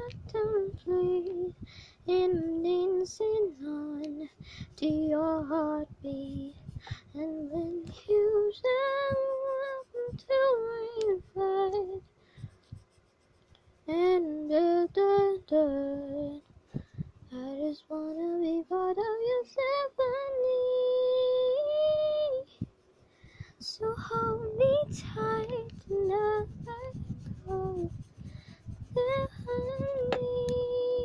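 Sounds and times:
woman singing unaccompanied: 0.0 - 12.1, 13.9 - 16.5, 17.3 - 22.6, 23.6 - 28.1, 28.8 - 31.0.

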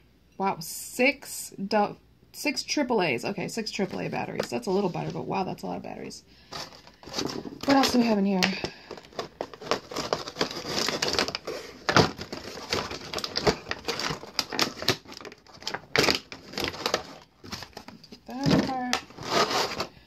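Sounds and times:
plastic tray crackling: 6.5 - 20.0.

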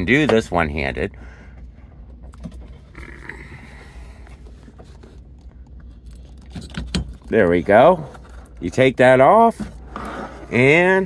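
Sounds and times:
low hum: 0.0 - 10.9.

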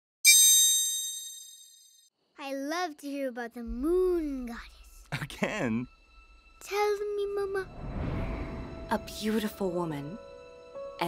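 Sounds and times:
high bell-like chime: 0.2 - 2.1.

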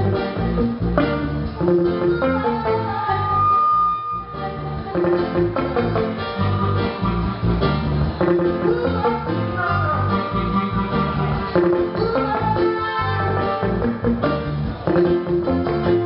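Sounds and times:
live reggae band playing: 0.0 - 16.0.

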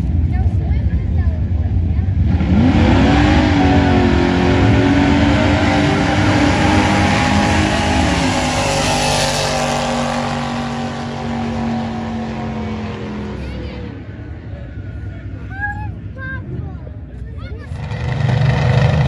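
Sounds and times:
drag car engines at high revs: 2.1 - 14.1, 17.6 - 19.0.

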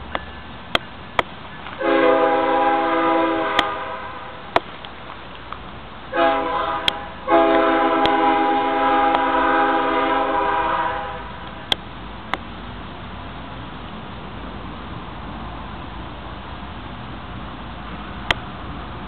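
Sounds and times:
locomotive air horn blasts: 1.8 - 4.5, 6.1 - 11.4.

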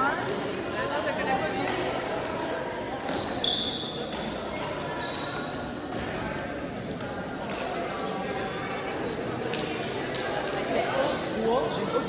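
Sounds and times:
shoes squeaking on court floor: 3.0 - 6.2.

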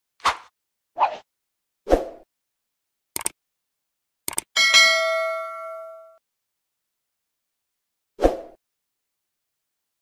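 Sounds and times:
bright bell ding: 4.6 - 6.2.

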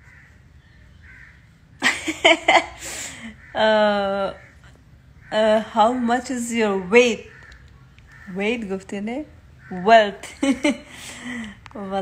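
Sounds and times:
woman laughing: 1.8 - 3.3, 10.2 - 11.6.

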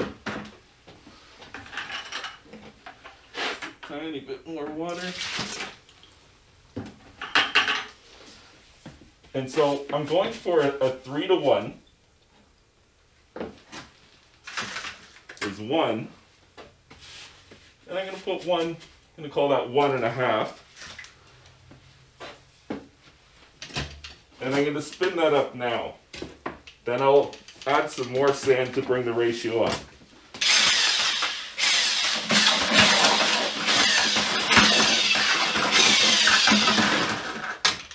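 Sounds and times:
water pouring and splashing: 4.9 - 6.2
plastic buckets clattering: 32.1 - 37.9.

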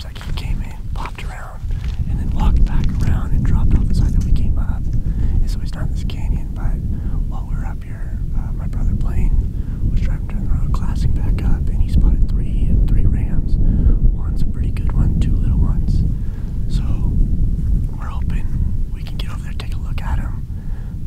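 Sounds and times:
person whispering: 0.0 - 13.5, 16.7 - 17.2, 17.9 - 20.4
steady low rumble: 0.0 - 21.0.

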